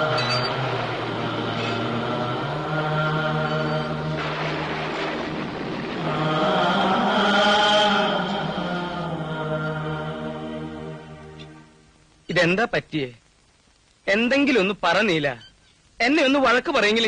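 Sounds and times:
voices chanting: 0.0 - 4.2, 6.0 - 11.3
low drone: 0.0 - 11.8.

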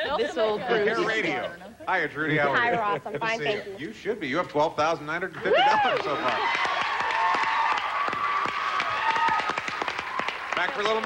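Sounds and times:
audience cheering: 5.4 - 11.0
audience clapping: 5.7 - 11.0.

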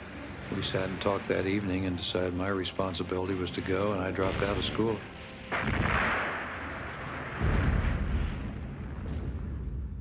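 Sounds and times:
explosion blast and rumble: 5.5 - 10.0.

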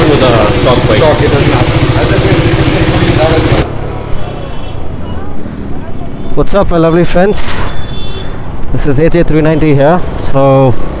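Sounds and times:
motorcycle engine idling: 0.0 - 3.7
engine and road noise while riding: 0.0 - 6.2, 10.0 - 11.0.

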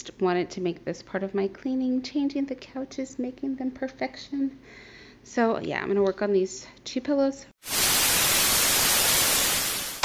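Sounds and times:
tv static hiss: 7.6 - 10.0.

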